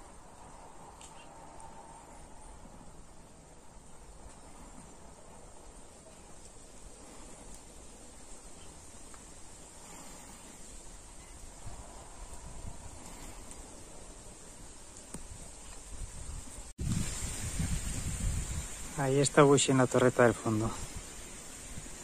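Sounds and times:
insects hissing: 6.6 - 22.0
wind rumble on microphone: 11.0 - 19.2.

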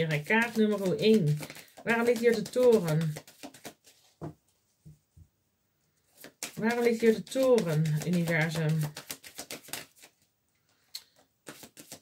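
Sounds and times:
cards shuffling and clicking: 0.0 - 4.1, 6.1 - 12.0.

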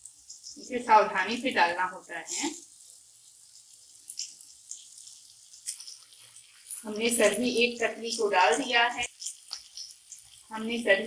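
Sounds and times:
masala sizzling in a pan: 0.0 - 11.0.

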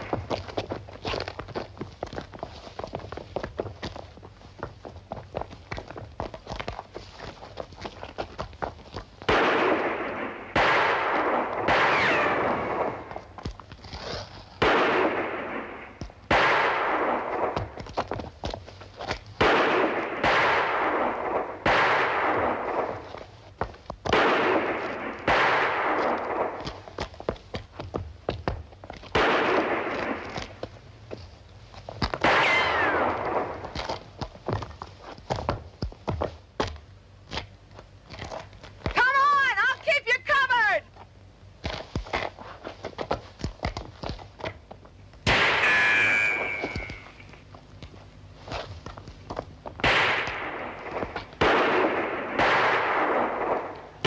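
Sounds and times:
echoing gunshots: 9.3 - 13.1, 14.6 - 17.7, 19.4 - 23.0, 24.1 - 26.6, 29.1 - 30.4, 32.2 - 33.7, 45.2 - 47.1, 49.8 - 54.0
ricochet whine: 45.2 - 47.4.

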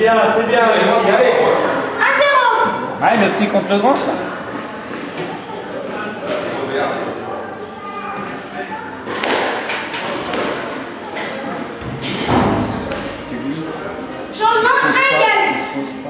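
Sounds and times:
rackets striking squash ball: 9.1 - 10.8, 11.8 - 13.3.

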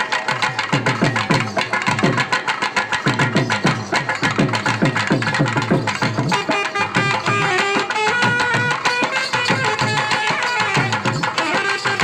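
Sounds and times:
fast folk drumming: 0.0 - 12.0.

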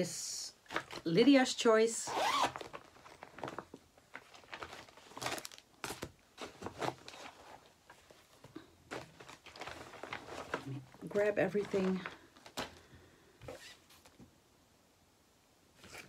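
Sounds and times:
zipper rasping: 2.1 - 2.7
bag rustling and handling: 2.1 - 14.2.

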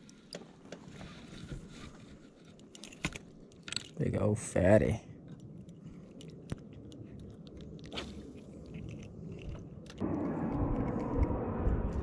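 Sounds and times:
steady low rushing noise: 10.0 - 12.0.

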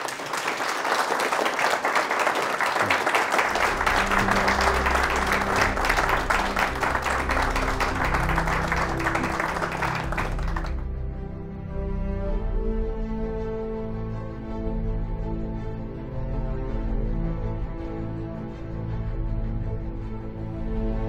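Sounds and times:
audience applause: 0.0 - 10.9
sustained low music notes: 3.5 - 21.0.

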